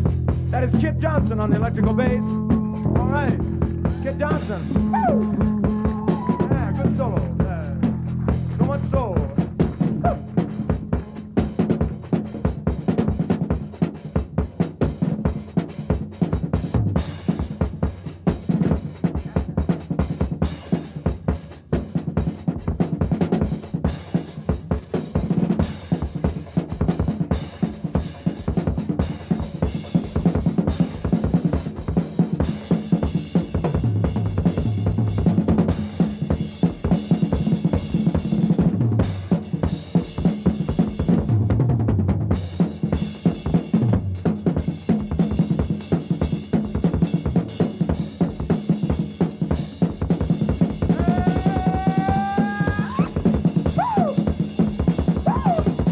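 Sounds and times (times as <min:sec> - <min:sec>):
busy drum kit hits: 0:00.0 - 0:55.9
funky rock band playing: 0:00.0 - 0:55.9.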